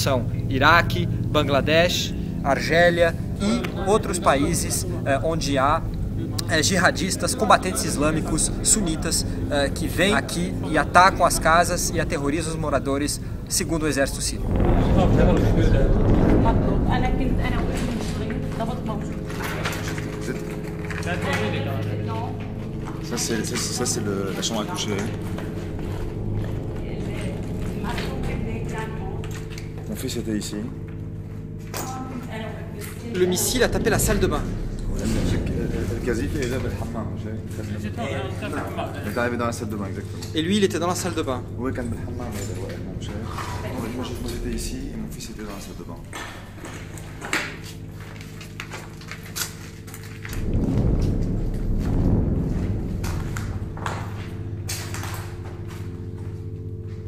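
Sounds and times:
deep rumble: 0.0 - 57.0
steady low hum: 0.0 - 57.0.

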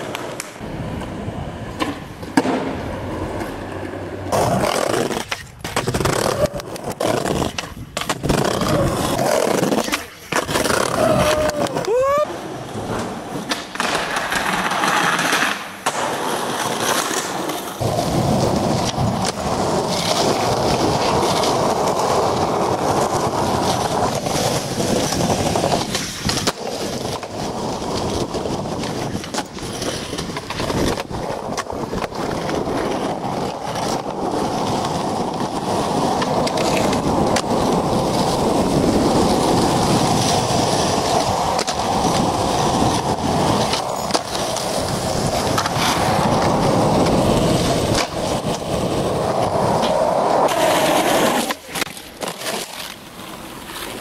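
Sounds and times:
skateboard wheels rolling: 0.0 - 54.0
skateboard tail pops and landings: 1.7 - 3.6, 13.0 - 22.0.

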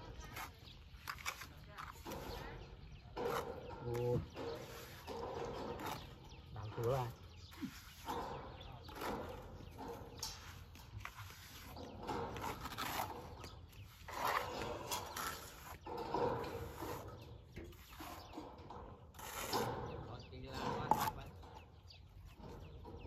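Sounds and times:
trowel scraping wet cement: 0.0 - 21.8.

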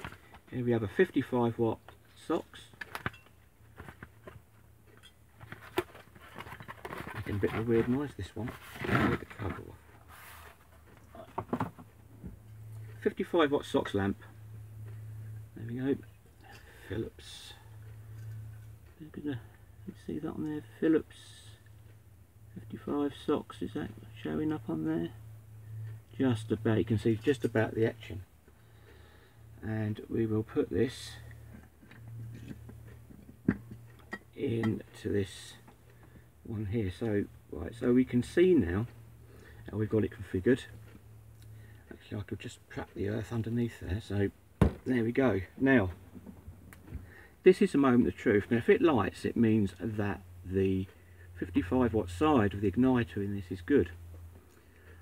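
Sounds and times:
low steady hum: 0.0 - 55.0
sharp knock: 44.6 - 44.9.

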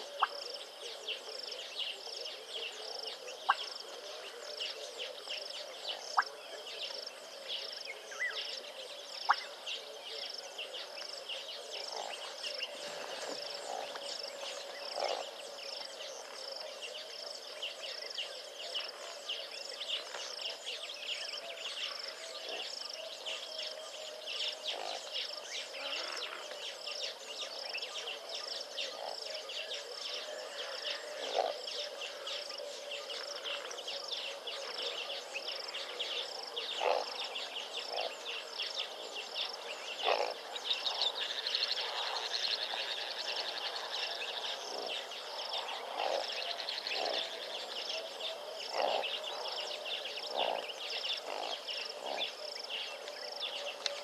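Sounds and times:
insects chirring: 24.5 - 54.0.

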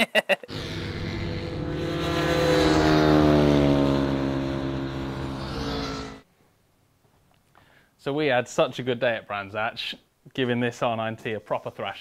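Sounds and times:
motorcycle racing past: 0.5 - 6.2.

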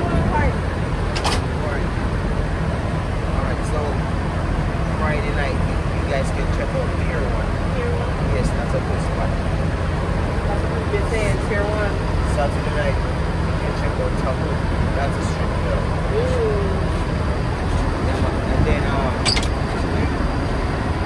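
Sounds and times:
minibus engine idling: 0.0 - 21.0.

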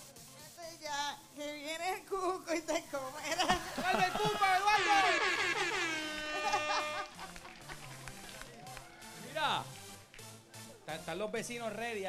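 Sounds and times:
game show horn: 3.5 - 9.8.

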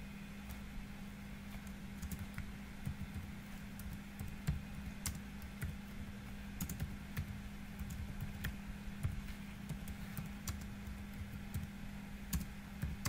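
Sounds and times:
steady low hum: 0.0 - 13.0
typing on computer keyboard: 2.0 - 5.8, 6.6 - 13.0.

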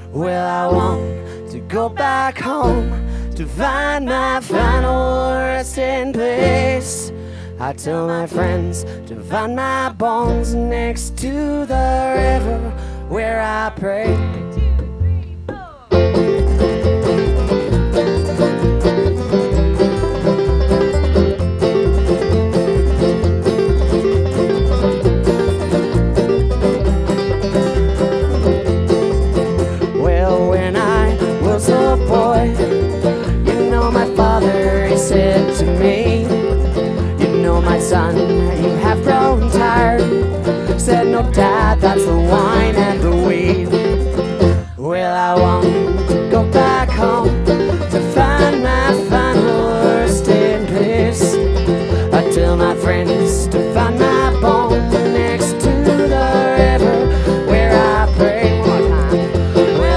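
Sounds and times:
person singing: 0.0 - 16.8, 29.6 - 59.9
acoustic guitar: 0.0 - 59.9
banjo: 0.0 - 59.9
plucked upright bass: 0.0 - 59.9.

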